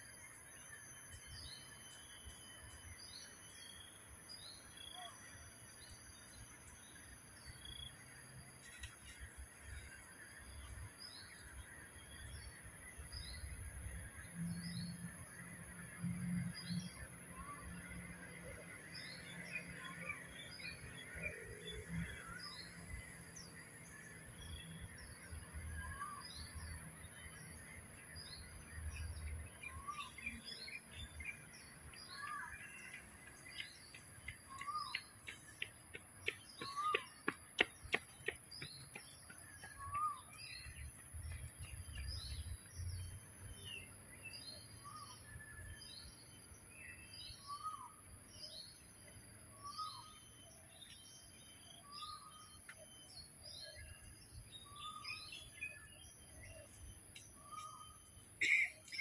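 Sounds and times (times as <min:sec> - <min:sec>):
birds chirping: 0:18.9 - 0:59.0.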